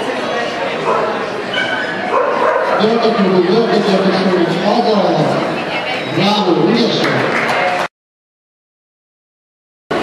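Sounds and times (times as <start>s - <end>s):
people's voices in a hall: 0.0s - 7.9s
dog barking: 0.8s - 3.0s.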